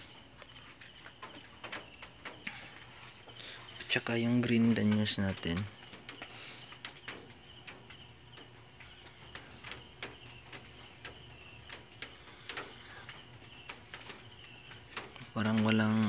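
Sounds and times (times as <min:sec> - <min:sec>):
crickets trilling: 0:00.0 - 0:16.0.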